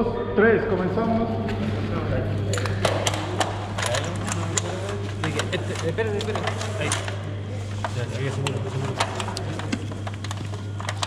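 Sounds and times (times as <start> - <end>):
faint voices: 0.0 - 11.0
steady low hum: 0.0 - 11.0
sharp plastic clicks and knocks: 2.6 - 7.2.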